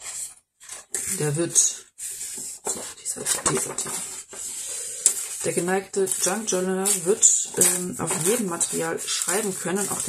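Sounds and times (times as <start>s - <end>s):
paper rustling: 0.0s - 1.4s, 2.0s - 10.0s.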